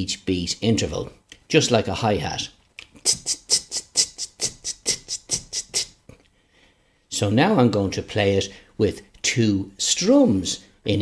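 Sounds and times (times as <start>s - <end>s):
hi-hat ticking: 3.0s - 6.0s.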